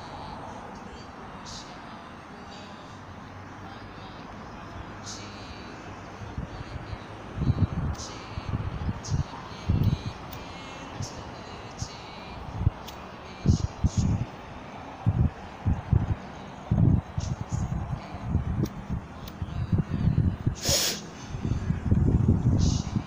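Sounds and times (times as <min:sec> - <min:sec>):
street background noise: 0:00.0 - 0:23.0.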